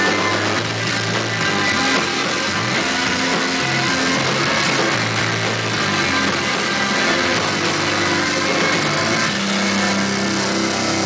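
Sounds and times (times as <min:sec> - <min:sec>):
distorted electric guitar: 0:00.0 - 0:11.0
live rock band: 0:00.0 - 0:11.0.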